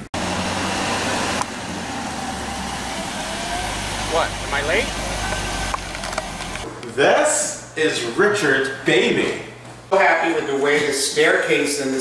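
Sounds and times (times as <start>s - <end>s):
car engine humming: 0.0s - 6.7s
outdoor noise: 0.0s - 6.8s.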